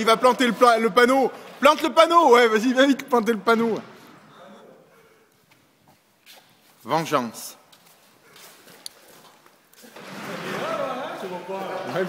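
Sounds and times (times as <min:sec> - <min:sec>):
men calling out and talking: 0:00.0 - 0:05.3, 0:09.8 - 0:12.0.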